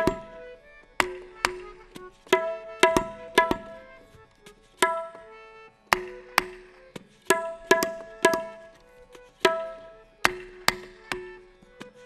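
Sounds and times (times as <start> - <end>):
hand drum strokes: 0.0 - 5.3, 5.9 - 12.0.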